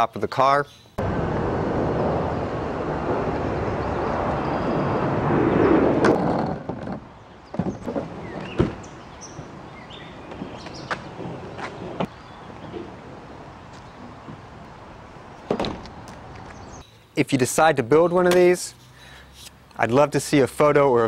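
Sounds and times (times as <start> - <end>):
steady rushing noise: 1.0 - 7.0.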